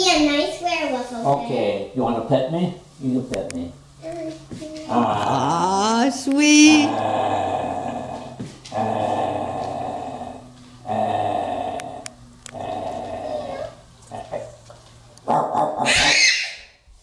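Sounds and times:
man growling: 0:04.9 - 0:05.7, 0:06.7 - 0:14.6
high-pitched cry: 0:15.8 - 0:16.8.

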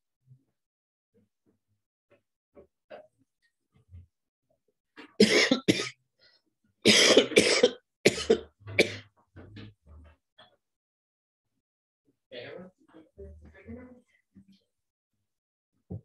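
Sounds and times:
man coughing: 0:05.2 - 0:06.0, 0:06.9 - 0:09.0.

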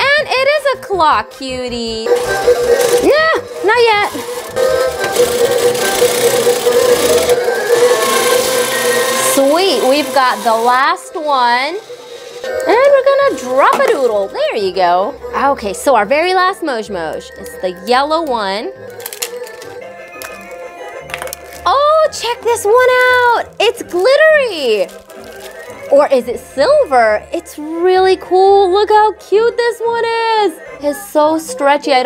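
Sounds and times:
music playing: 0:00.0 - 0:32.0
claw machine motors whirring: 0:02.1 - 0:12.8
plastic capsule clicking open: 0:18.9 - 0:21.7.

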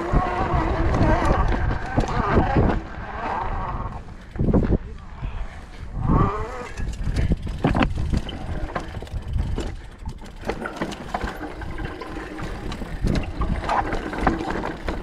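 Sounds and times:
bike tyres rumbling on dirt: 0:00.0 - 0:15.0
bike clattering over rocks: 0:06.7 - 0:15.0.

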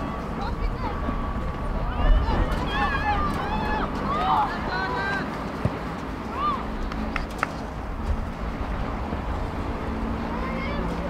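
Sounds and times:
low wind rumble: 0:00.0 - 0:11.0
people shouting and calling: 0:01.7 - 0:05.4.

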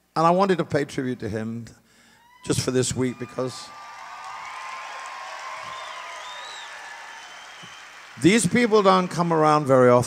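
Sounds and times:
whistles from audience: 0:02.2 - 0:09.4
audience clapping: 0:03.1 - 0:10.0.

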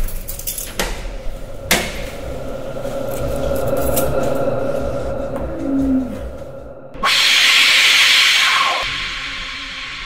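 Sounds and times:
loud hiss: 0:07.0 - 0:10.0.

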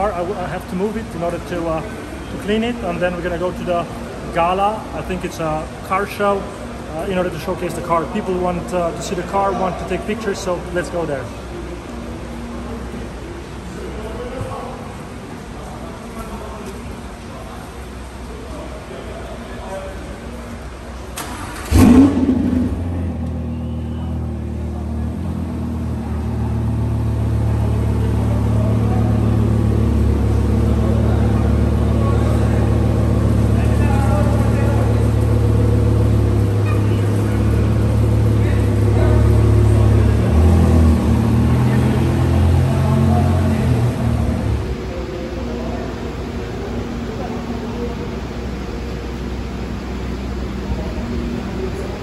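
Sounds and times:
car engine idling: 0:20.6 - 0:52.0
car engine starting: 0:20.9 - 0:52.0.

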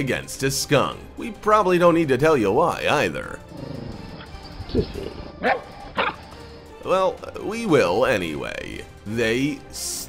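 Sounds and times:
background music: 0:00.0 - 0:10.0
dog barking: 0:05.4 - 0:06.2.

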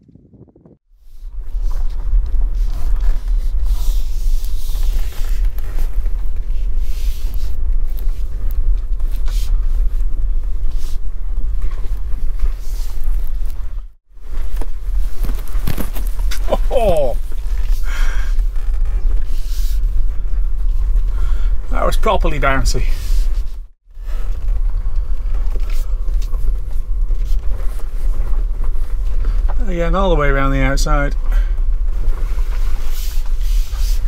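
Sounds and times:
tyres rumbling over bumpy ground: 0:01.2 - 0:34.0.

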